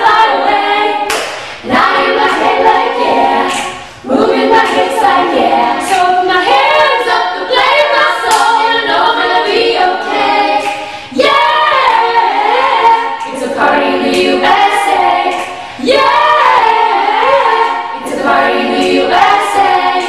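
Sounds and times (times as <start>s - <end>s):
group singing a cappella: 0.0s - 20.0s.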